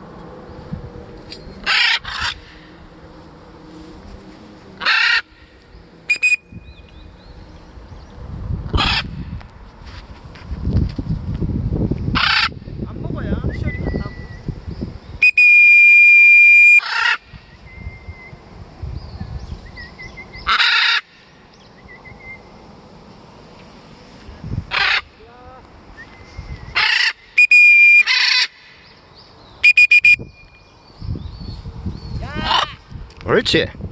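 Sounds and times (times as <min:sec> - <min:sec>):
wind rumbling on microphone: 0:00.0 - 0:15.9, 0:16.9 - 0:20.6, 0:21.6 - 0:27.4, 0:29.2 - 0:33.9
macaw screeches: 0:01.6 - 0:02.7, 0:04.8 - 0:05.3, 0:26.8 - 0:28.6
high whistle blasts: 0:06.1 - 0:06.6, 0:15.2 - 0:16.8, 0:27.4 - 0:28.1, 0:29.6 - 0:30.6.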